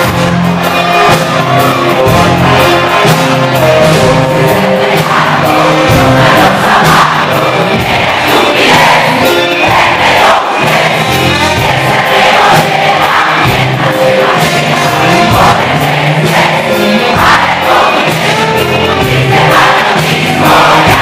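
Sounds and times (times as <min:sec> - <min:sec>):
crowd singing along: 0:00.0 - 0:21.0
live rock band playing: 0:00.0 - 0:21.0.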